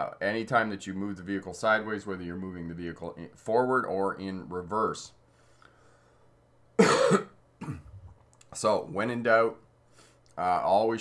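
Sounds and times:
man coughing: 6.8s - 8.1s.

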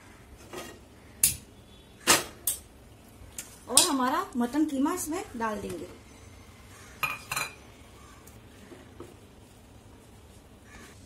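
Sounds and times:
metal bowl clinking: 7.0s - 7.6s.

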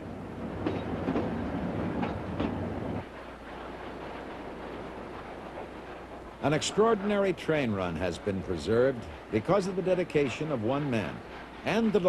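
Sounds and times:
train rumbling on track: 0.0s - 12.0s.

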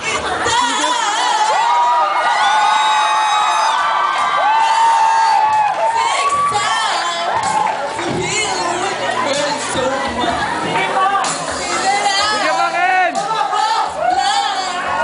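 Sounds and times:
woman singing through microphone: 0.0s - 2.0s, 4.6s - 15.0s
audience cheering and shouting: 0.0s - 15.0s.

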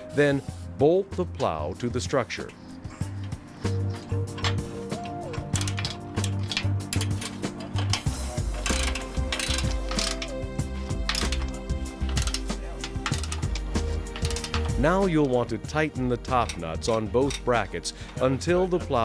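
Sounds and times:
background music: 0.0s - 19.0s
ratchet wrench clicking: 5.3s - 14.8s.

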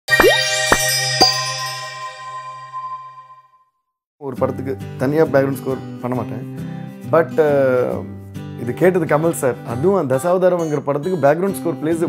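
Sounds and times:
musical logo jingle: 0.1s - 3.6s.

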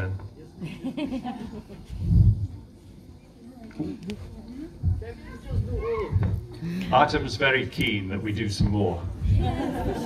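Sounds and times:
people talking quietly: 0.0s - 10.0s.

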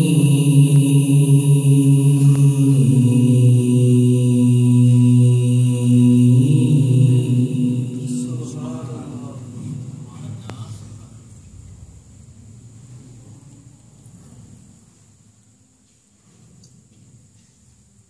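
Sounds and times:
man reciting melodically: 0.0s - 11.3s.

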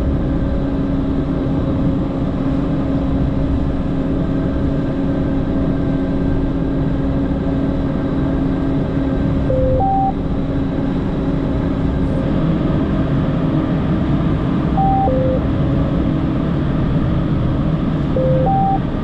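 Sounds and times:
diesel engine running under load: 0.0s - 19.0s
steady hum: 9.5s - 10.2s, 14.7s - 15.8s, 18.1s - 19.0s
two-note electronic beep: 9.5s - 10.2s, 14.8s - 15.4s, 18.2s - 19.0s.

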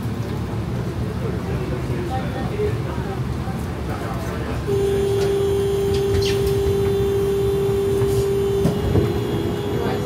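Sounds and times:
tram door warning buzz: 4.7s - 10.0s.

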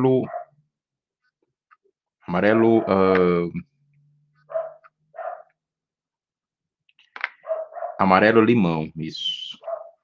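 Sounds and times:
dog barking: 0.2s - 0.6s, 4.5s - 5.6s, 7.4s - 8.1s, 9.6s - 10.0s.

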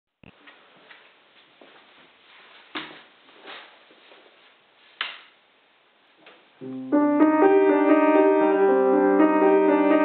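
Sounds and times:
faint room hiss: 0.1s - 10.0s
soft taps and shuffles: 0.3s - 5.2s.

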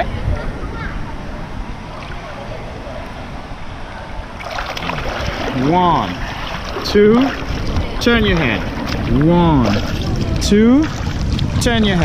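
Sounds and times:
pool water lapping: 0.5s - 11.9s
swimmer splashing: 1.6s - 3.5s, 4.2s - 11.2s.

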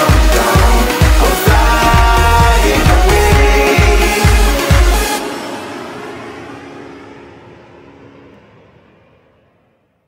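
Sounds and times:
hip-hop music: 0.0s - 5.8s.

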